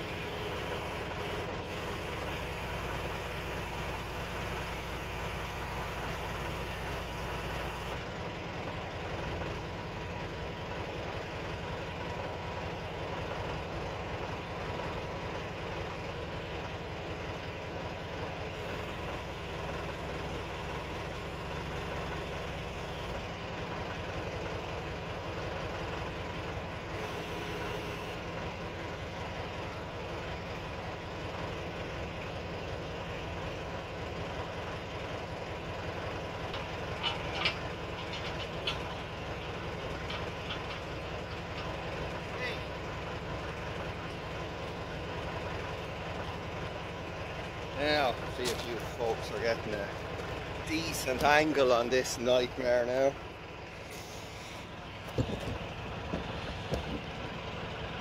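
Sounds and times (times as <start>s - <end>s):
backhoe engine running: 0.0s - 58.0s.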